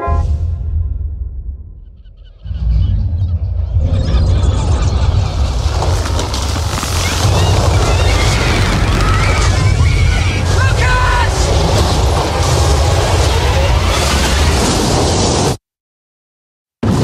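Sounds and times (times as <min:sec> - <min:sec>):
deep rumble: 0:00.0 - 0:14.9.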